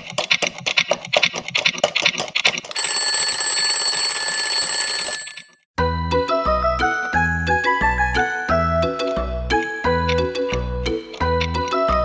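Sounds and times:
alarm clock ticking: 2.8 - 5.5
alarm clock bell ringing: 2.8 - 5.6.

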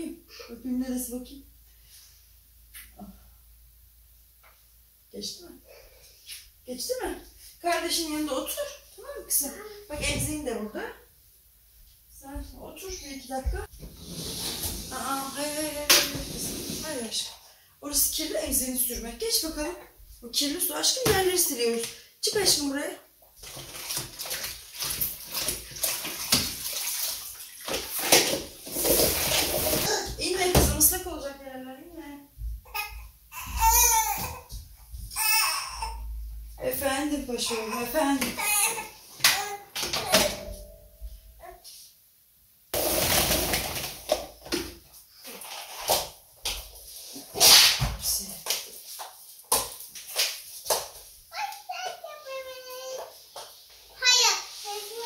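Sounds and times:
mop swishing on floor: 13.5 - 17.2, 23.5 - 30.1, 45.2 - 51.3, 52.8 - 55.0
mop sloshing in a bucket: 23.4 - 30.1, 42.8 - 46.2
child babbling: 51.3 - 53.0, 54.0 - 55.0.

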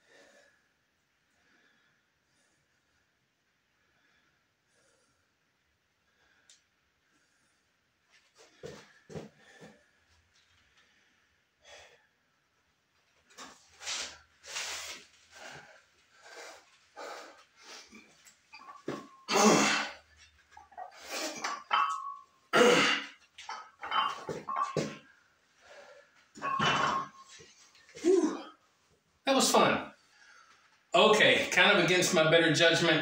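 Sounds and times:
man exhaling and grunting: 19.3 - 20.0, 22.5 - 23.2, 28.0 - 28.5.

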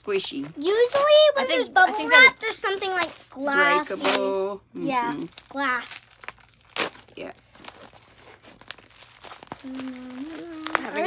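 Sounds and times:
package wrapping crinkling and tearing: 5.0 - 11.0.

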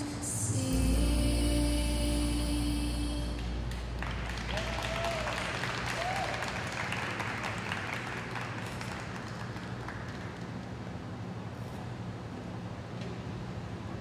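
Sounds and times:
program music: 0.4 - 4.7
audience clapping: 3.7 - 11.1
short cheers: 4.5 - 6.8.

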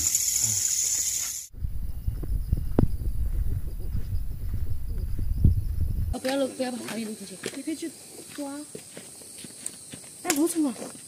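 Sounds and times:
insects chirping: 0.0 - 11.0
low rumbling noise: 1.5 - 6.2.

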